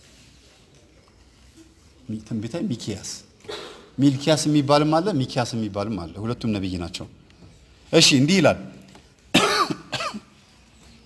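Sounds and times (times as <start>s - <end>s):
man coughing: 3.4s - 4.0s, 9.3s - 10.4s.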